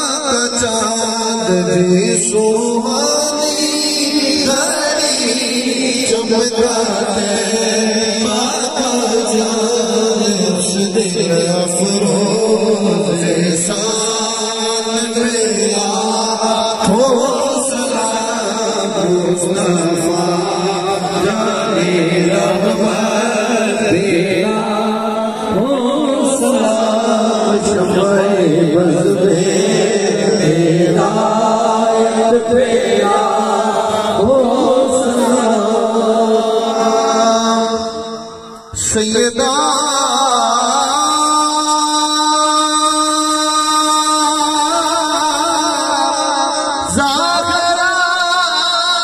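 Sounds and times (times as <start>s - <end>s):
man singing through loudspeakers: 0.0s - 49.0s
men chanting over a microphone: 0.0s - 49.0s.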